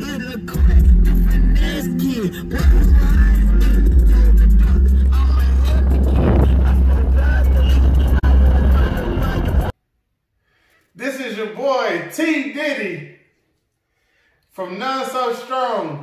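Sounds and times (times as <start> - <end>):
bass-heavy music in a car: 0.0 - 9.7.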